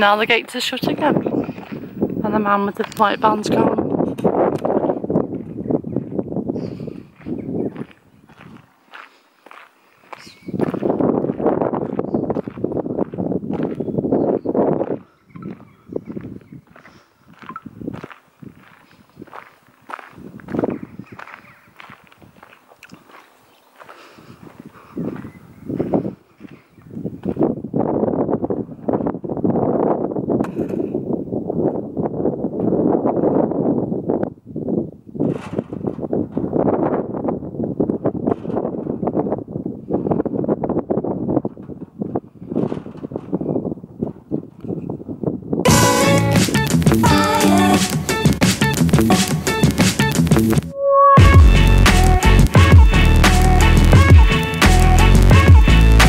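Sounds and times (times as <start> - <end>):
footsteps crunching on gravel: 0.9 - 3.5, 7.1 - 27.5.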